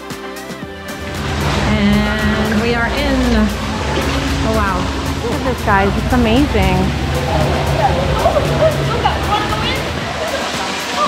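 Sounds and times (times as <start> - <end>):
people calling and shouting: 0.8 - 11.0
steady rush of noise: 0.8 - 11.0.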